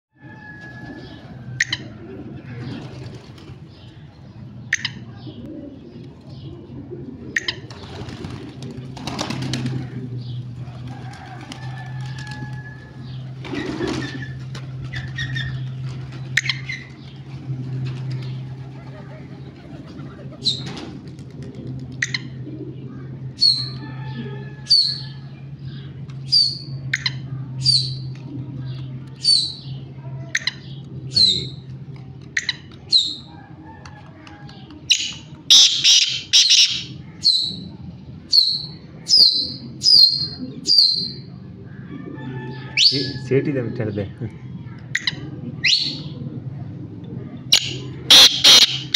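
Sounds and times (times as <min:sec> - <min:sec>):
steady low hum: 0:00.2 - 0:48.9.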